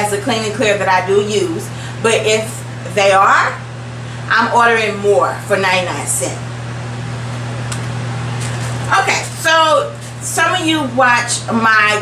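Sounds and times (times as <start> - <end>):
woman speaking: 0.0 - 3.7, 4.3 - 6.5, 8.9 - 12.0.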